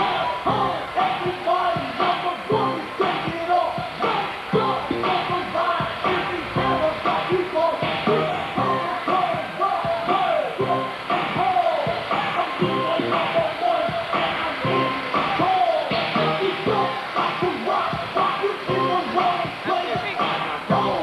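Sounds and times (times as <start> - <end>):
music with steady beat: 0.0 - 21.0.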